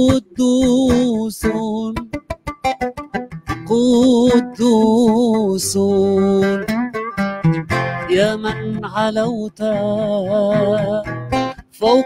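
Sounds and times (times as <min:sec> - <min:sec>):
oud playing: 0:00.0 - 0:12.0.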